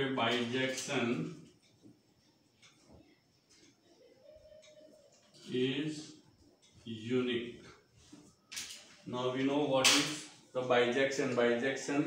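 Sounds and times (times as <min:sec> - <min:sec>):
man speaking: 0:05.4 - 0:06.2, 0:06.8 - 0:07.8.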